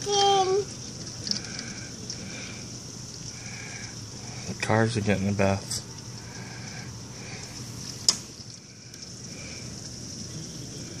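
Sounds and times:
heavy rain hissing: 0.0s - 11.0s.

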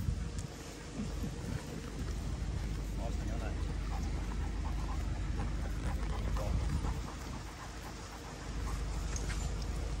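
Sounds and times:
low steady rumble: 0.0s - 10.0s
paws pattering on wet ground: 0.0s - 10.0s.

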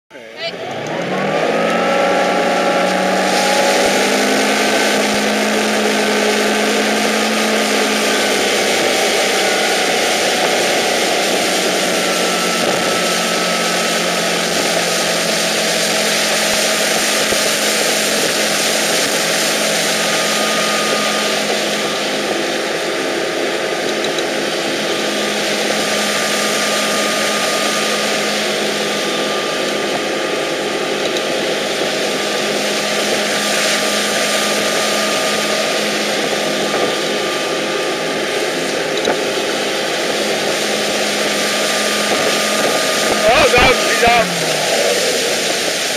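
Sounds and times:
boat engine running: 0.0s - 45.9s
wind: 0.0s - 45.9s.

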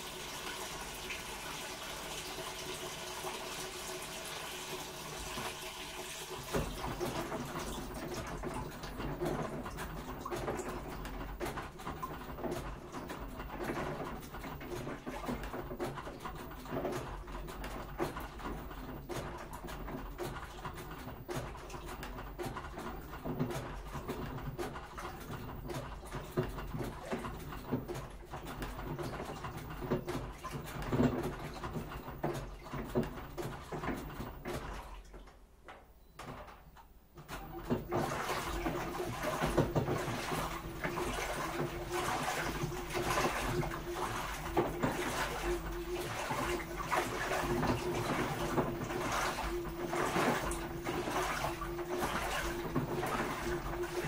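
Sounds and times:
washing machine filling hiss: 0.0s - 9.4s, 37.4s - 54.0s
water sloshing and gurgling: 0.0s - 35.5s, 37.2s - 54.0s
low rumble of drum turning: 37.2s - 54.0s.

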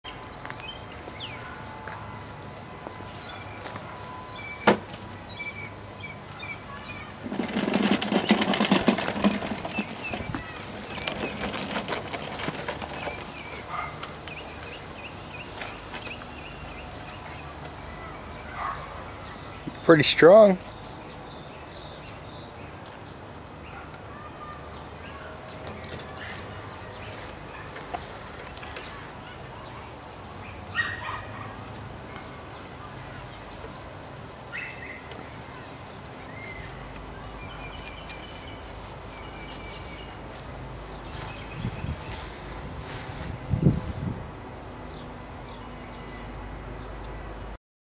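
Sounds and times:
small birds chirping: 0.0s - 44.1s
push mower wheels rattling: 6.8s - 14.8s, 15.4s - 17.4s.

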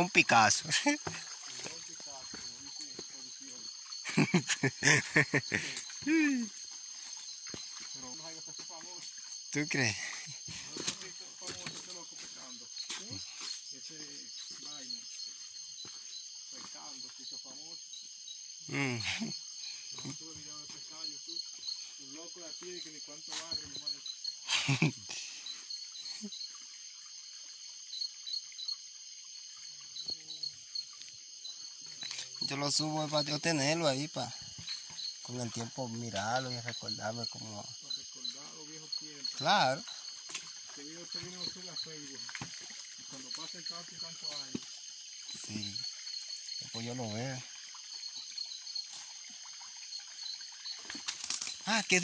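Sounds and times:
insect trills: 0.0s - 52.0s
short insect chirp: 0.0s - 52.0s.

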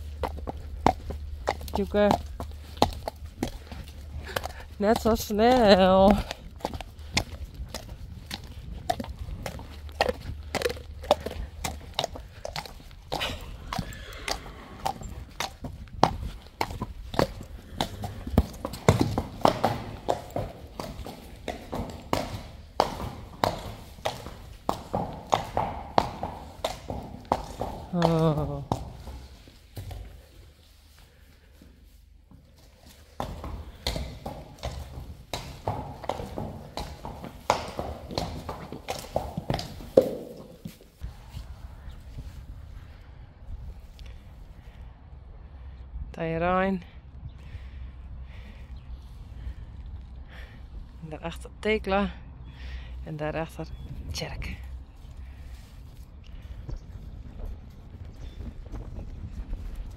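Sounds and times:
hooves clopping on hard ground: 0.0s - 42.7s, 53.4s - 59.9s.

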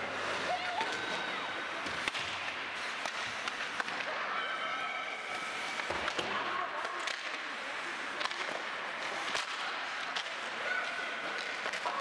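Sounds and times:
ice rink noise: 0.0s - 12.0s
hockey stick and puck cracks: 1.8s - 4.2s, 5.3s - 12.0s.

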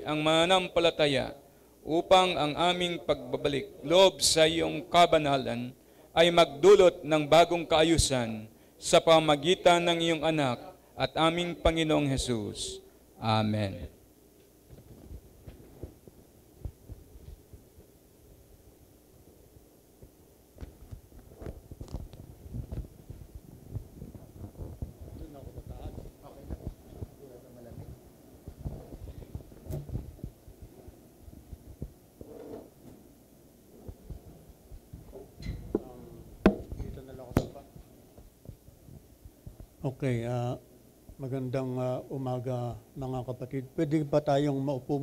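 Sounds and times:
low room hum: 0.0s - 45.0s
microphone handling thumps: 14.6s - 18.5s, 20.0s - 33.0s, 33.8s - 39.8s.

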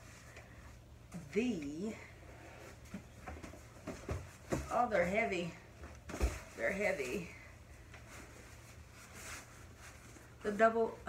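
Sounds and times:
boxes knocking and rustling: 2.7s - 7.3s.

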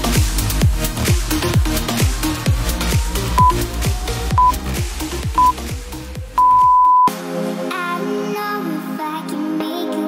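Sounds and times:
electronic dance music: 0.0s - 7.1s
timer beeps: 4.4s - 4.6s, 5.4s - 5.6s, 6.4s - 7.1s.

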